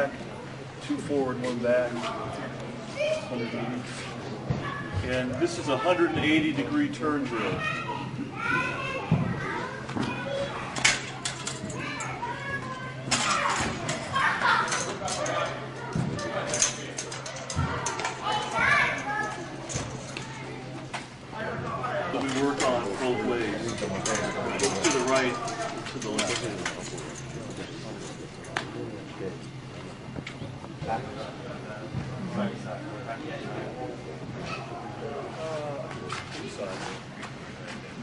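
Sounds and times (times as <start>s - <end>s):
chatter of voices in a hall: 0.0s - 38.0s
steady low hum: 0.0s - 38.0s.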